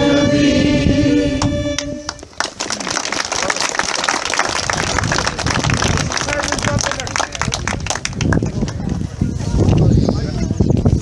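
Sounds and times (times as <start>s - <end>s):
singing and instruments: 0.0s - 2.2s
crowd clapping: 2.1s - 9.1s.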